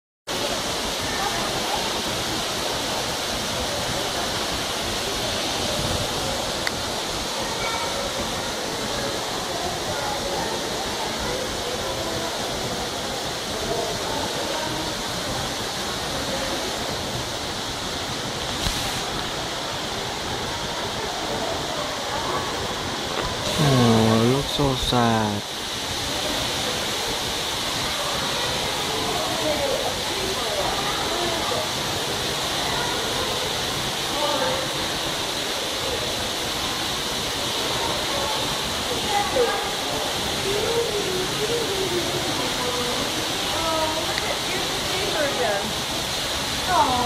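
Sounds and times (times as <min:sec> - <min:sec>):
distant indistinct voices: 0:00.4 - 0:47.0.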